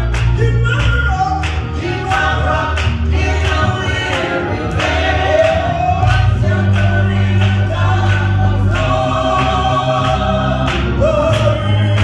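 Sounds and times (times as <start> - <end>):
group singing gospel song: 0.0 - 12.0.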